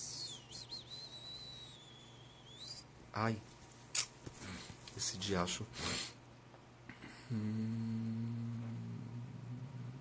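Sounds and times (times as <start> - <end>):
faint high whistling tone: 0.0 - 2.9.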